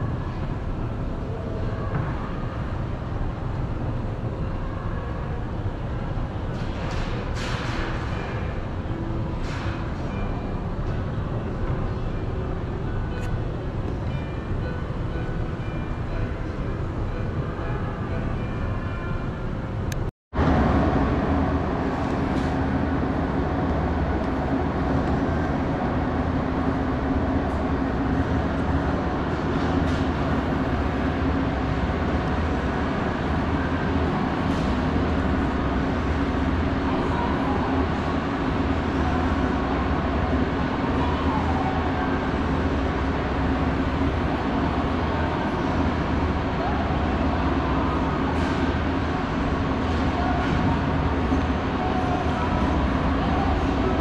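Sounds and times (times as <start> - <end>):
moving walkway mechanical hum: 0.0 - 54.0.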